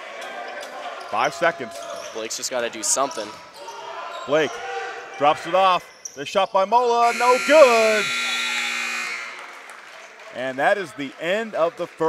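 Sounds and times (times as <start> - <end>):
scoreboard horn: 7.0 - 9.7.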